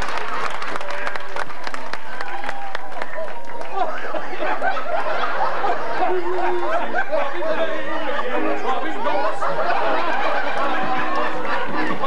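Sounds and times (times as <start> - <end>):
many voices talking: 3.0 - 12.0.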